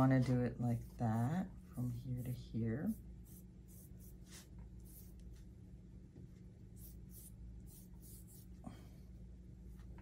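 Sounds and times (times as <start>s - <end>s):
paintbrush strokes: 0.0s - 5.6s, 6.7s - 8.6s
low steady hum: 0.0s - 10.0s.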